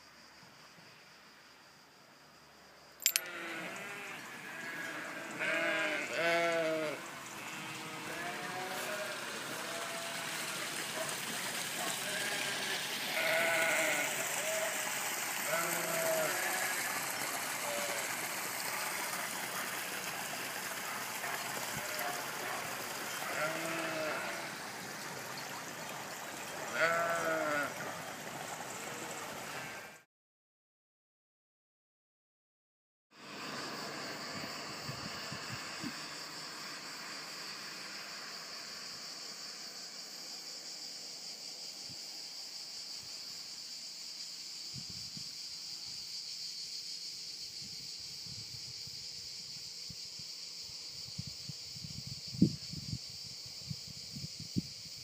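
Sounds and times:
background hiss: 0:00.0 - 0:29.9, 0:33.2 - 0:55.0
sheep bleating: 0:03.2 - 0:10.2, 0:12.0 - 0:14.7, 0:15.5 - 0:16.7, 0:23.2 - 0:24.5, 0:26.7 - 0:27.8.

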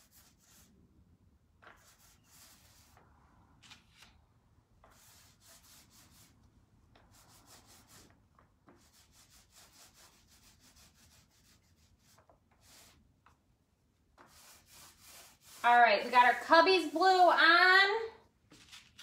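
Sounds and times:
paint brush strokes on wood: 0:01.8 - 0:03.0, 0:07.0 - 0:08.1, 0:08.7 - 0:13.0, 0:14.2 - 0:17.0.

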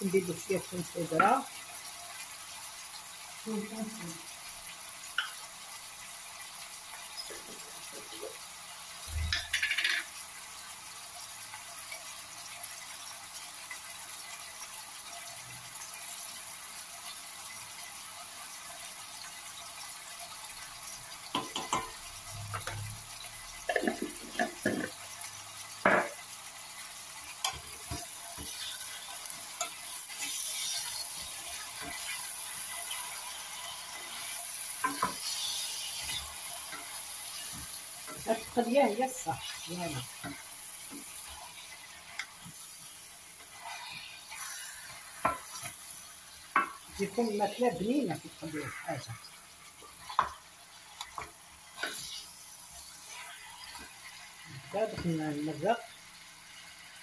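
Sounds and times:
vegetables sizzling in oil: 0:00.0 - 0:57.0.

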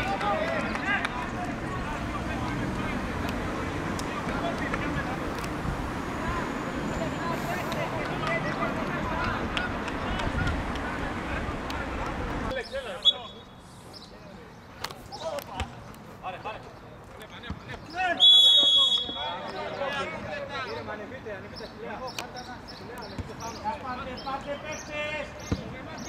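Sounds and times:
referee's whistle blast: 0:12.8 - 0:13.4, 0:18.2 - 0:19.4.

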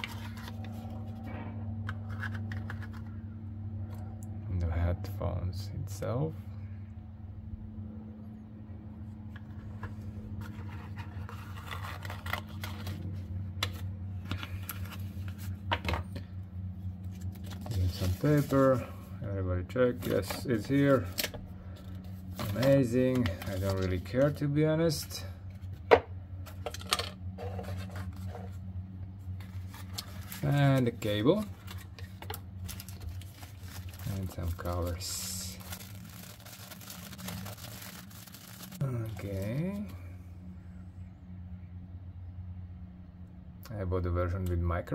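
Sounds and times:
wrapping rustling and crinkling: 0:00.0 - 0:01.4, 0:09.4 - 0:15.7, 0:16.9 - 0:19.1, 0:20.0 - 0:24.4, 0:27.4 - 0:40.0
low steady hum: 0:00.0 - 0:44.9.

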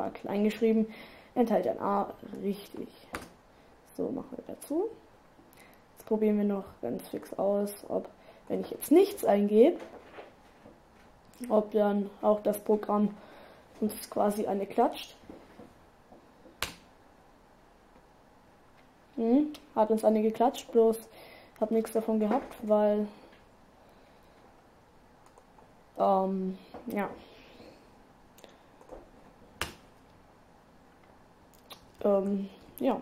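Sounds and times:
computer mouse and keyboard clicks: 0:25.2 - 0:25.7.

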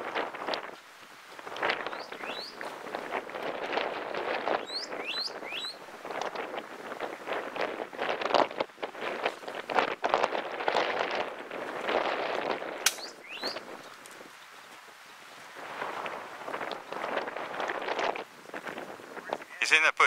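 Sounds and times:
rising bird chirps: 0:01.9 - 0:02.7, 0:04.6 - 0:05.8, 0:13.0 - 0:13.9
sharp click: 0:12.8 - 0:13.1.

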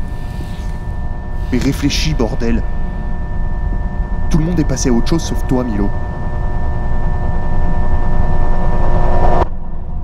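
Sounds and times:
steady high tones: 0:00.0 - 0:08.8.

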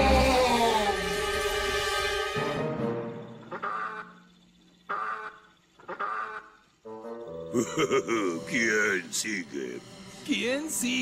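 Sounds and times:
cartoon goose honking: 0:03.5 - 0:04.2, 0:04.9 - 0:06.6.

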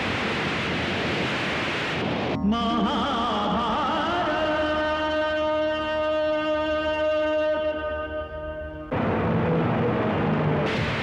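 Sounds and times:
steady rushing noise: 0:00.0 - 0:02.7, 0:08.9 - 0:11.0.

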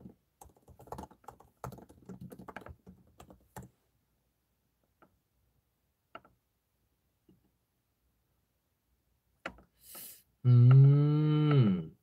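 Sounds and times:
man humming low: 0:10.4 - 0:12.0.

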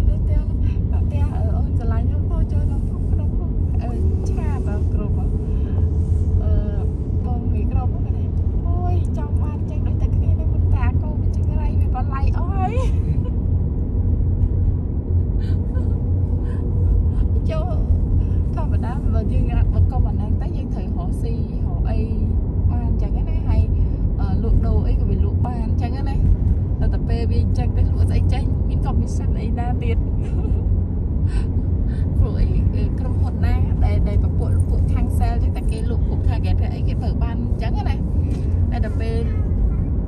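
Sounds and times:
car engine and tyres rumbling: 0:00.0 - 0:40.0.

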